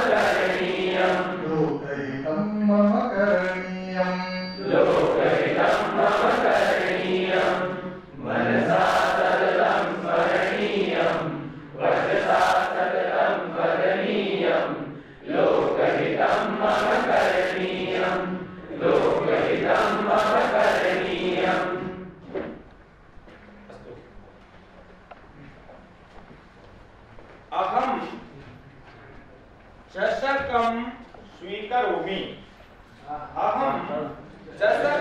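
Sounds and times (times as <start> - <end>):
voices chanting in unison: 0.0 - 2.6, 4.0 - 22.1.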